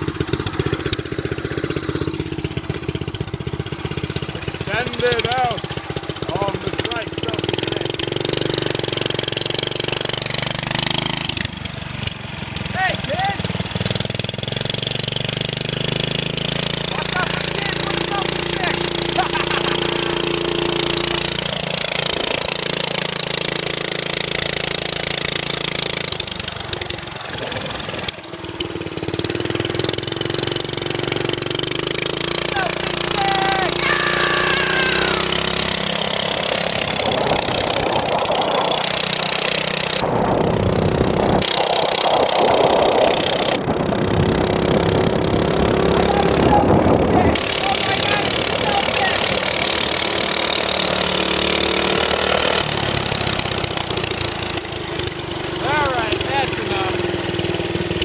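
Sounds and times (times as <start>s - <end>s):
small engine revving: 0.0s - 58.0s.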